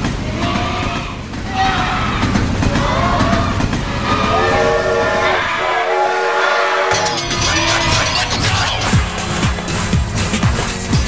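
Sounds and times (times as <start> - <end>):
noisy rumble: 0.0 - 6.0, 6.9 - 11.0
voices: 0.2 - 9.3
train horn chord: 4.4 - 10.2
music: 6.8 - 11.0.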